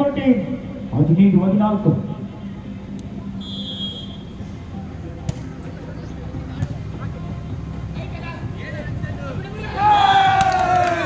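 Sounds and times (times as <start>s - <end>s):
crowd chatter: 2.0s - 11.0s
referee's whistle: 3.4s - 4.4s
volleyball being hit: 5.2s - 5.6s.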